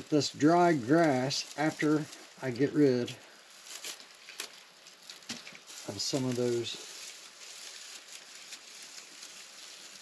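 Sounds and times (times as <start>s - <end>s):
dry leaves rustling and crackling: 0.0s - 10.0s.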